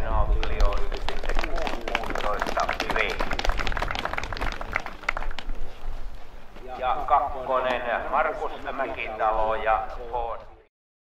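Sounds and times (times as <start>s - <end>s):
crowd hand-clapping: 0.0s - 5.8s.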